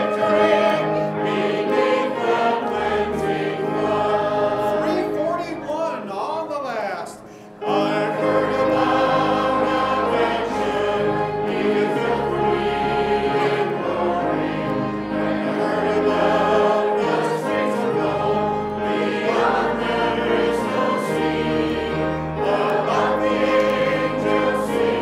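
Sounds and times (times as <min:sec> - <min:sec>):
group singing a hymn: 0:00.0 - 0:05.3, 0:07.4 - 0:25.0.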